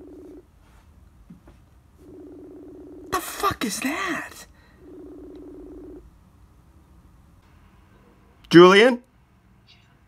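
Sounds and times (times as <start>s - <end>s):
phone ringback tone: 0.0s - 0.4s, 2.0s - 3.3s, 4.7s - 6.0s.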